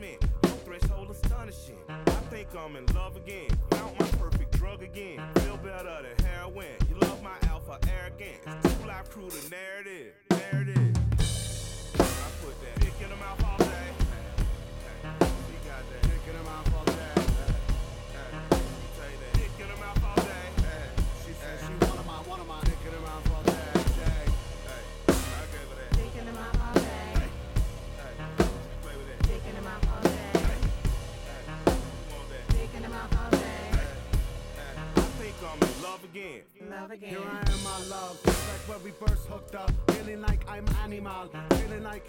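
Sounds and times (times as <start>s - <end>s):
drum kit hip-hop beat: 0.0s - 9.7s, 10.3s - 36.3s, 37.2s - 42.0s
sustained synth tones: 11.2s - 35.9s.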